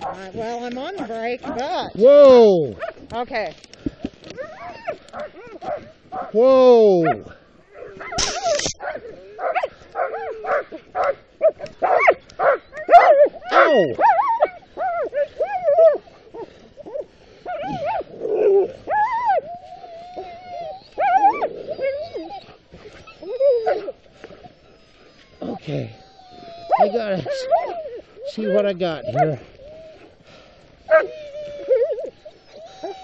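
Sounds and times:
dogs barking and whining: 0:00.0 - 0:03.0, 0:04.2 - 0:33.0.

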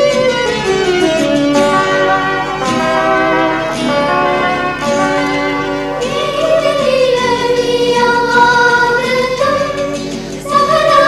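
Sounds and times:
sustained instrumental accompaniment: 0:00.0 - 0:11.0
choir singing: 0:01.5 - 0:11.0.

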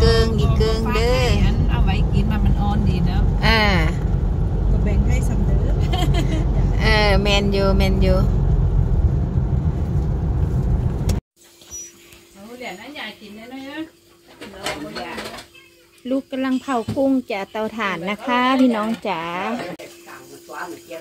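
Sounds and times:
voices talking: 0:00.0 - 0:04.0, 0:04.7 - 0:08.3
car road and engine rumble: 0:00.0 - 0:11.2.

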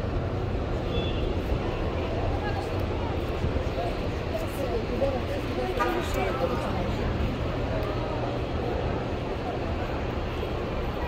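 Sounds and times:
low street rumble: 0:00.0 - 0:11.0.

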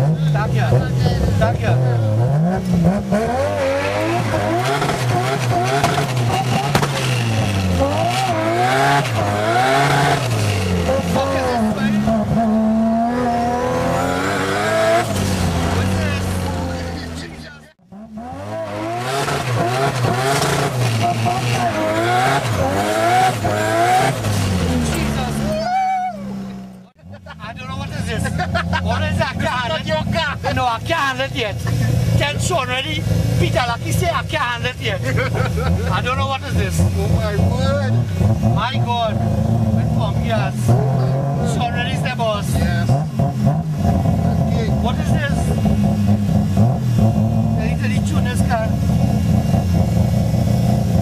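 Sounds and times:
rotary engine revving through gears: 0:00.0 - 0:25.5, 0:35.1 - 0:51.0.

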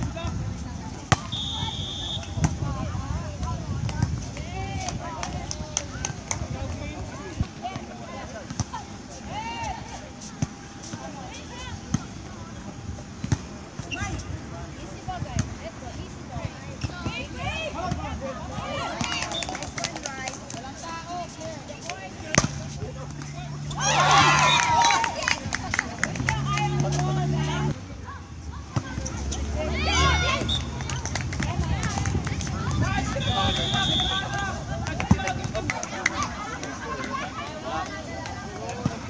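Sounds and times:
players calling out: 0:21.7 - 0:27.8, 0:28.7 - 0:32.0.

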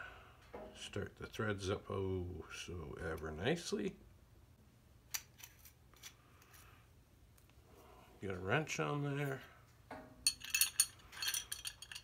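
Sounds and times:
wrench clinking on metal fitting: 0:10.3 - 0:12.0.

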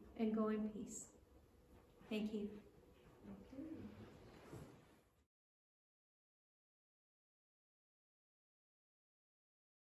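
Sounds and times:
faint low voice murmur: 0:03.2 - 0:04.6.

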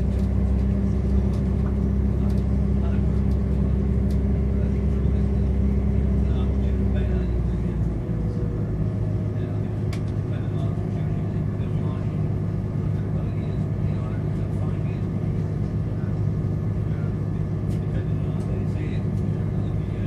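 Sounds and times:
diesel engine rumble: 0:00.0 - 0:20.0.

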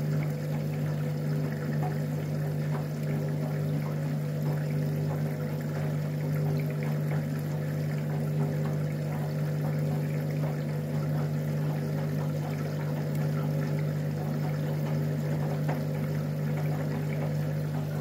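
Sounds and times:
washing machine hum: 0:00.0 - 0:18.0
water and laundry sloshing: 0:00.0 - 0:18.0.

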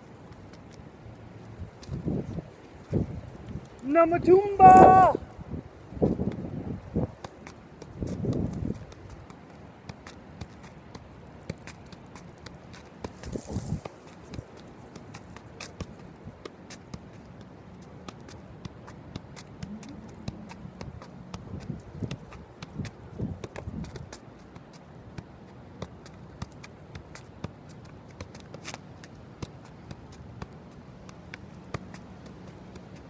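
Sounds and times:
soccer ball knocks off foot: 0:05.9 - 0:33.0.

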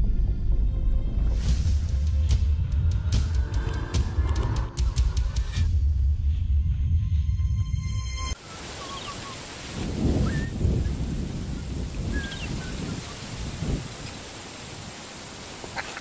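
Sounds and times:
background music: 0:00.0 - 0:08.4
steady outdoor hiss: 0:08.3 - 0:16.0.

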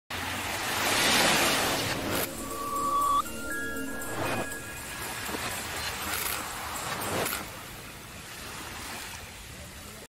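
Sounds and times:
ocean surf washing onto beach: 0:00.2 - 0:02.3.

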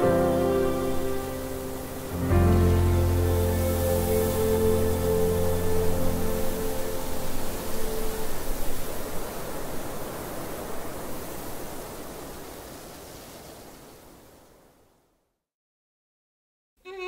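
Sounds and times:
rushing wind: 0:00.0 - 0:14.7.

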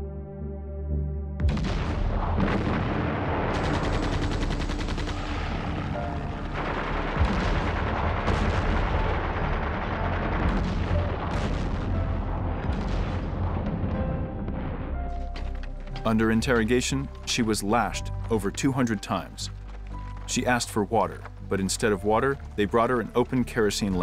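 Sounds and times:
continuous gunfire: 0:01.4 - 0:14.6
rapid machine-gun fire: 0:01.5 - 0:13.6
heavy gun blasts: 0:01.5 - 0:14.8.

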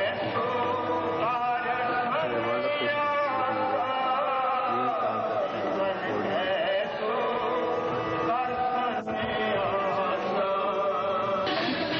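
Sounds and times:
person chanting held notes: 0:00.0 - 0:11.9.

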